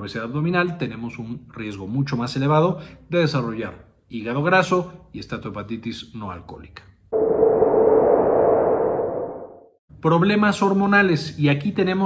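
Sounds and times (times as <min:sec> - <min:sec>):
ringing tone: 0:07.2 - 0:09.7
noisy swell: 0:07.2 - 0:09.8.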